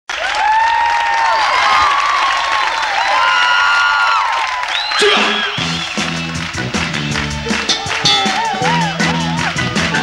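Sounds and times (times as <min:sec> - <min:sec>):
applause: 0:00.1 - 0:10.0
audience cheering: 0:00.1 - 0:10.0.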